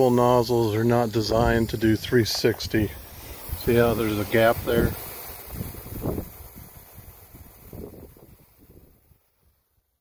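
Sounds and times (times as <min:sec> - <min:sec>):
spray sprinkler hissing: 0:00.0 - 0:10.0
wind buffeting microphone: 0:01.0 - 0:09.1.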